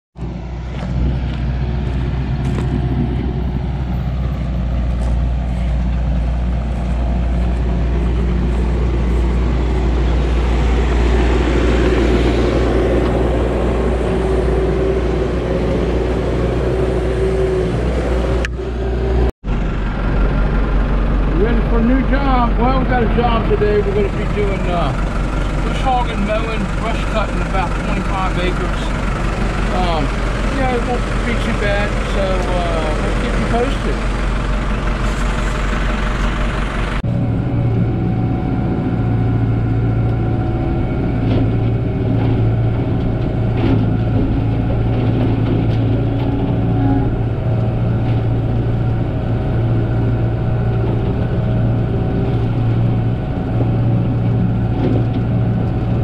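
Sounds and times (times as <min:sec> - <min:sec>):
tractor diesel engine running: 0:00.2 - 0:56.0.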